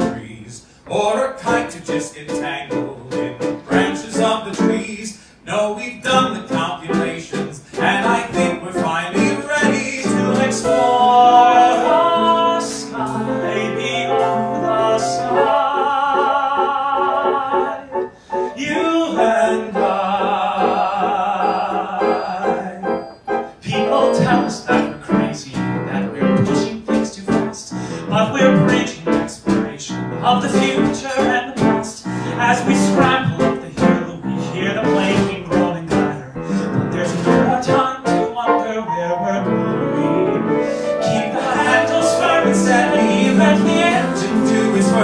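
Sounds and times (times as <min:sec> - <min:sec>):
man singing: 0:00.0 - 0:45.0
piano notes and chords: 0:00.0 - 0:45.0.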